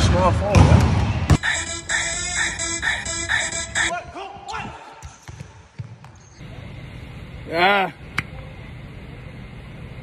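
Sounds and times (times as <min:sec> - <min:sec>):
low outdoor background hum: 0:05.6 - 0:10.0.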